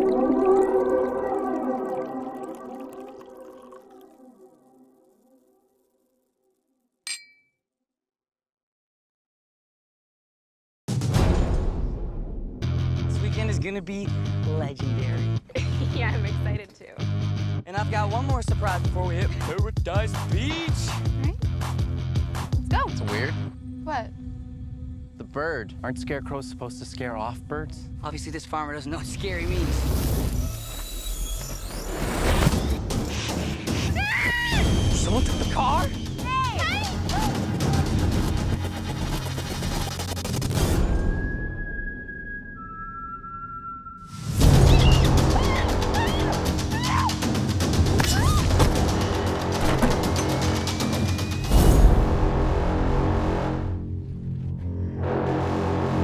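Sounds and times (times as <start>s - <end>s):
glass clink: 7.1s - 7.6s
faint low drone: 23.3s - 29.6s.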